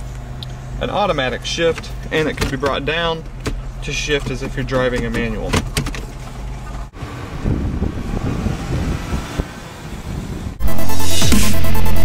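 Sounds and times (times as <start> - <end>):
electronic dance music: 10.6 - 12.0.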